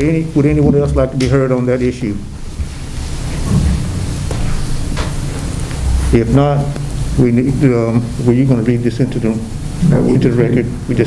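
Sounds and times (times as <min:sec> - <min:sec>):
room noise hiss: 0:00.0 - 0:11.0
steady low rumble: 0:02.0 - 0:11.0.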